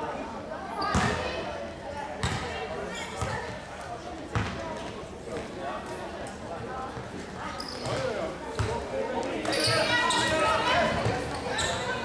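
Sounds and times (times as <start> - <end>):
basketball bouncing on floor: 2.2 - 2.4.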